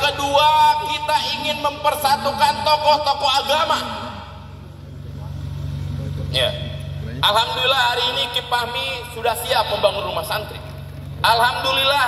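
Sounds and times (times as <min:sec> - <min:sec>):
amplified speech: 0:00.0 - 0:12.0
steady low hum: 0:00.0 - 0:12.0.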